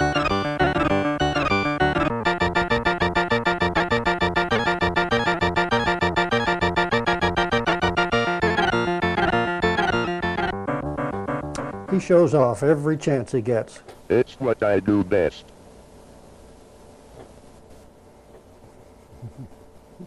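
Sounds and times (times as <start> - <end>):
fast computer music: 0.0 - 12.8.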